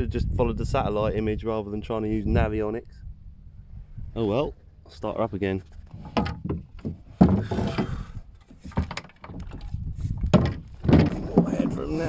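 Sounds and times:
sail or rope rustling: 5.3s - 12.0s
spars knocking against wooden hull: 6.0s - 11.9s.

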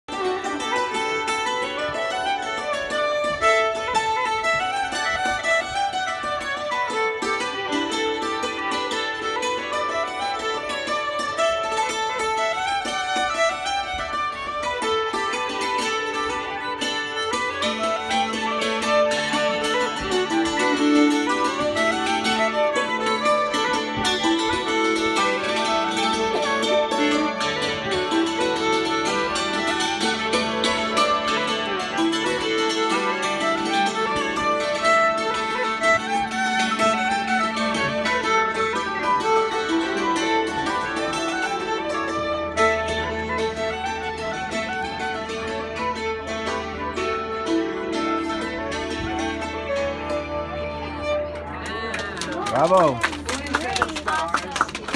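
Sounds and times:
violin melody: 0.0s - 54.9s
hammered dulcimer: 0.1s - 54.9s.

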